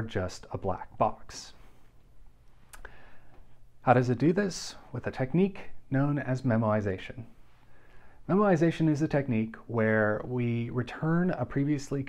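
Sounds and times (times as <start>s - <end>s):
person speaking: 0.0s - 2.9s, 3.6s - 7.5s, 8.2s - 12.0s.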